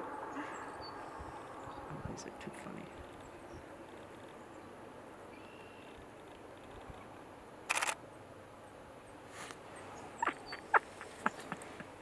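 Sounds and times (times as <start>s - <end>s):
faint outdoor background: 0.0s - 12.0s
camera shutter clicks: 7.7s - 8.0s.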